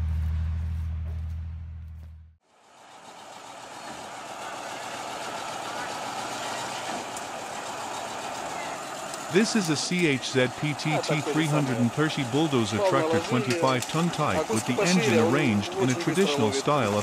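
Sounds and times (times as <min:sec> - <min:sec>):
diesel truck engine humming: 0:02.6 - 0:17.0
bulldozer machinery rumbling: 0:02.7 - 0:17.0.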